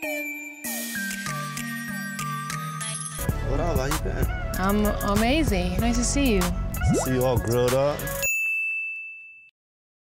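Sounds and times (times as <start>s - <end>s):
high chime ding: 8.2s - 9.5s.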